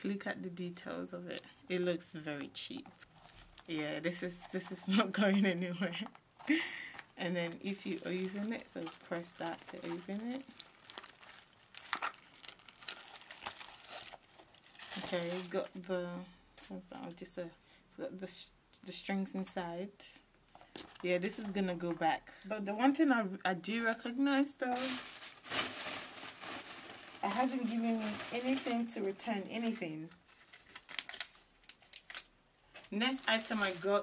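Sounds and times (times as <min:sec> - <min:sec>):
rustling: 0:02.7 - 0:05.2, 0:06.4 - 0:15.9, 0:24.7 - 0:34.0.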